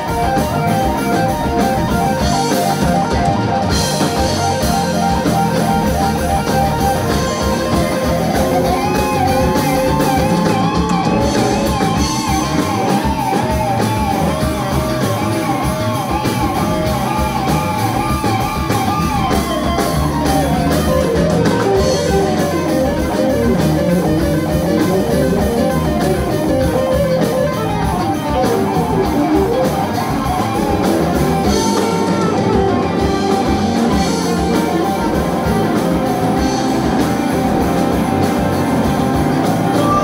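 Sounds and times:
drum kit: 0.0s - 40.0s
electric guitars playing lead: 0.0s - 40.0s.

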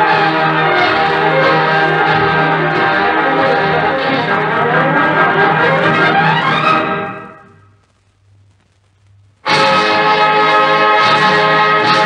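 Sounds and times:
orchestra on gramophone record: 0.0s - 12.0s.

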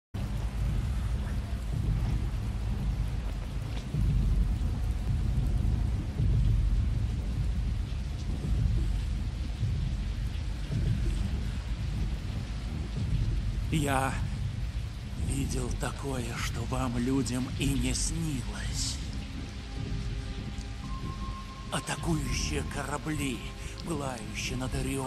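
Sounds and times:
heavy rain falling: 0.2s - 25.0s
thunder rumbling: 0.2s - 25.0s.

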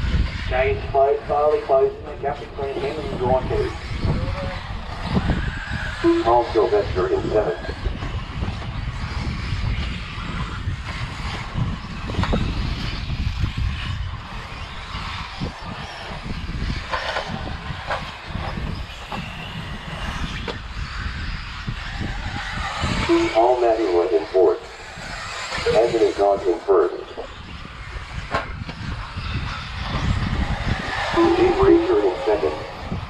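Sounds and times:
low rumble: 0.0s - 33.0s
rc cars running on dirt: 0.0s - 33.0s
announcer speaking: 0.5s - 3.8s, 6.0s - 7.7s, 23.1s - 24.7s, 25.6s - 27.3s, 31.0s - 32.8s.

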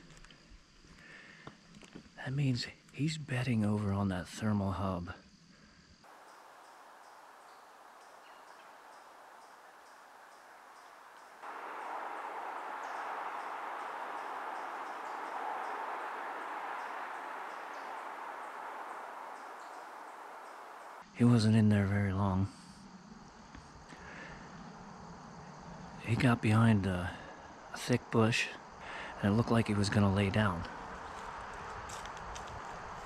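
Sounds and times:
faint hiss: 0.0s - 23.0s, 25.9s - 33.0s
even rushing noise: 6.1s - 21.0s.

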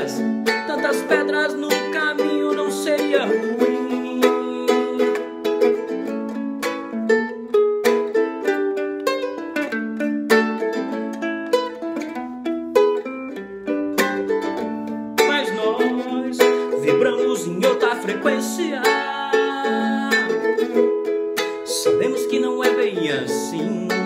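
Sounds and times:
ukulele plucked melody: 0.0s - 24.0s
ukulele strummed chords: 0.0s - 24.0s.

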